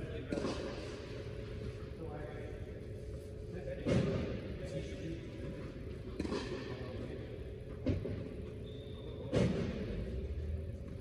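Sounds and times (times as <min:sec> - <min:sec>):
steady low hum: 0:00.0 - 0:11.0
tennis balls struck by racquets: 0:00.2 - 0:01.1, 0:06.1 - 0:06.8.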